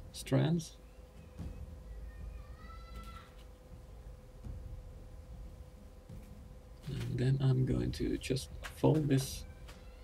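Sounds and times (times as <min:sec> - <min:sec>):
faint steady hum: 0:00.0 - 0:10.0
high-pitched drawn-out cry: 0:02.4 - 0:03.4.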